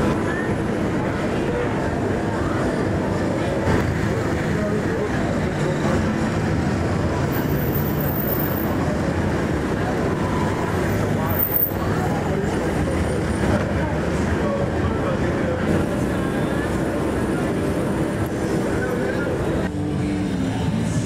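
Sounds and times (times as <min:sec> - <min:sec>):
chatter of many voices: 0:00.0 - 0:21.0
steady traffic: 0:00.0 - 0:21.0.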